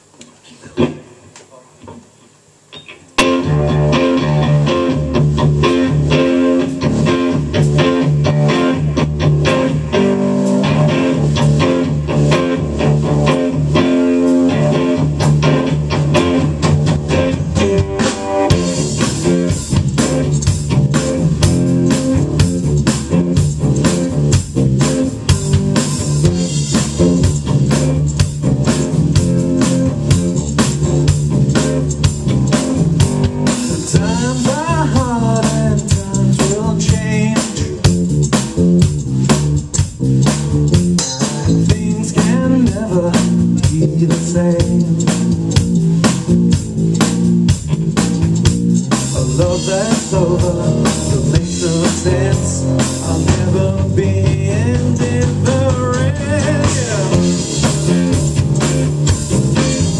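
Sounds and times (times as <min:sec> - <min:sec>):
drum kit: 0:00.0 - 0:59.9
electric guitar: 0:00.2 - 0:59.9
bass guitar: 0:02.8 - 0:59.9.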